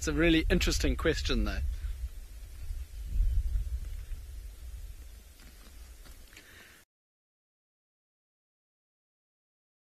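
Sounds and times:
wind buffeting microphone: 0.0 - 6.3.

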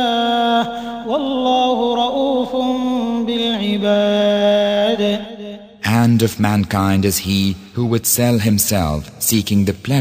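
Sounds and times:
person chanting melodic recitation: 0.0 - 10.0.

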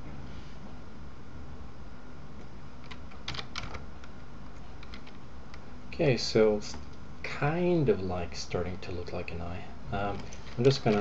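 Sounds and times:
steady low hum: 0.0 - 11.0
computer keyboard clicks: 2.8 - 4.2, 4.8 - 5.6.

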